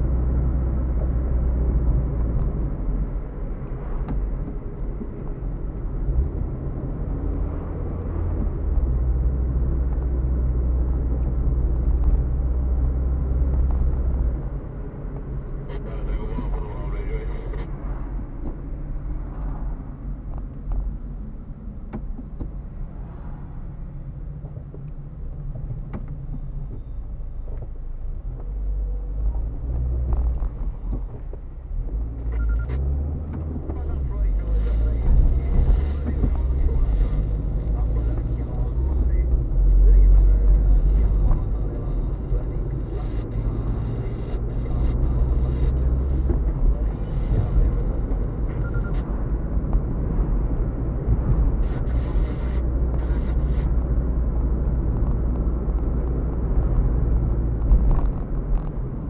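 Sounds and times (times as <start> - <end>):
car engine and tyres rumbling: 0.0 - 59.0.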